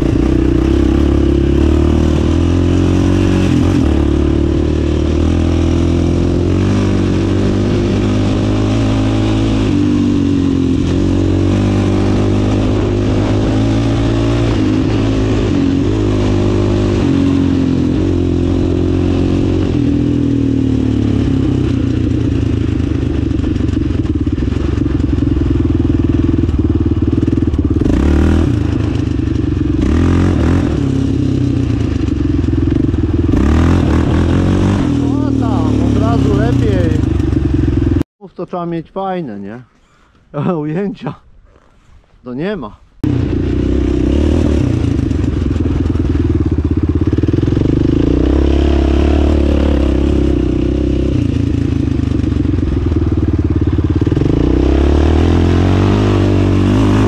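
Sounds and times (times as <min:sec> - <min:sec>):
quad engine revving: 0:00.0 - 0:38.0, 0:43.0 - 0:57.0.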